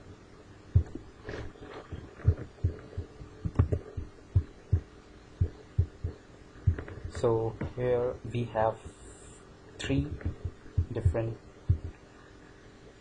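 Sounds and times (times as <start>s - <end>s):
faint steady hum: 0.0s - 13.0s
dull thumps of mouse and keyboard: 3.4s - 4.0s.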